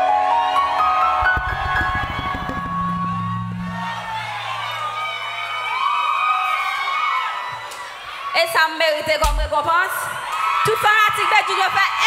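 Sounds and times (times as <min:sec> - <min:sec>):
crowd cheering and whooping: 0:00.0 - 0:12.0
low drum hits: 0:09.2 - 0:09.6.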